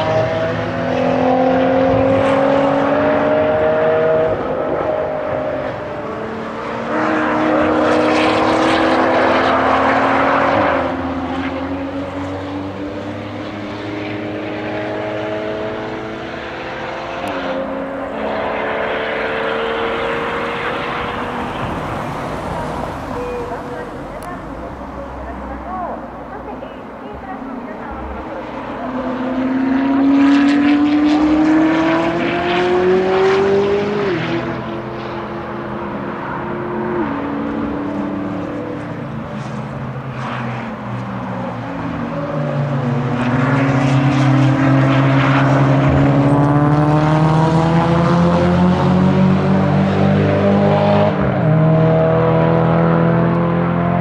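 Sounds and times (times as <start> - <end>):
sports cars accelerating hard: 0.0 - 54.0.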